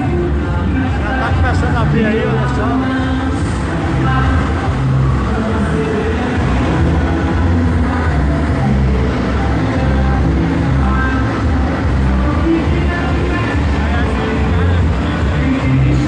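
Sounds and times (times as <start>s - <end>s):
loud bass-heavy music from speakers: 0.0s - 16.0s.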